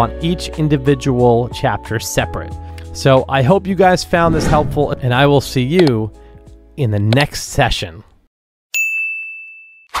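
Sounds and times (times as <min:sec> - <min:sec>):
notification bell ding: 0:08.8 - 0:09.9.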